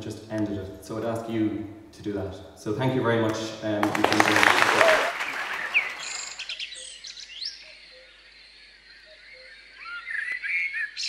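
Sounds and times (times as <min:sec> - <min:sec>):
applause: 0:03.8 - 0:06.4
birds chirping and singing: 0:05.3 - 0:11.0.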